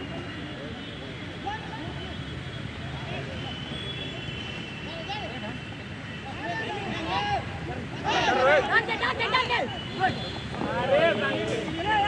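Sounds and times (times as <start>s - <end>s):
players shouting: 6.4s - 12.0s.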